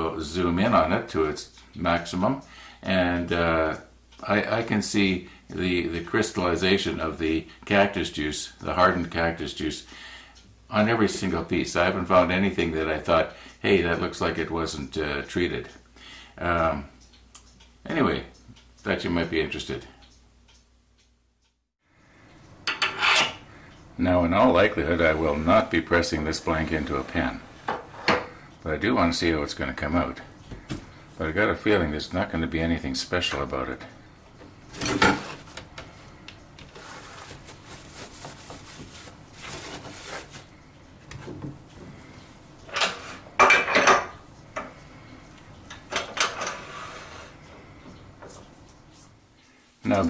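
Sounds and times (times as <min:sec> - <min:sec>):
metal scraping and rubbing: 0:22.7 - 0:23.4
metal-on-metal scraping slide: 0:22.7 - 0:23.4, 0:46.2 - 0:47.4.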